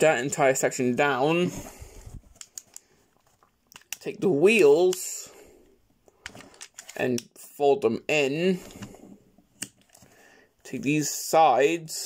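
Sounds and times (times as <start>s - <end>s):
plastic toy clicks: 6.2s - 7.2s.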